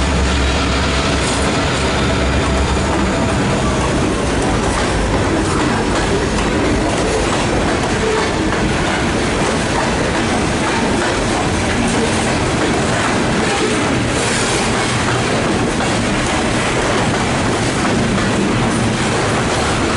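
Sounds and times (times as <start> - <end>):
train wheels on rails: 0.0 - 19.9.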